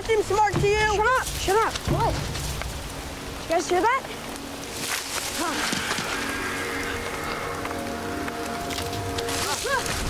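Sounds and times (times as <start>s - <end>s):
heavy rain pouring: 0.0s - 10.0s
music of long held tones: 2.3s - 10.0s.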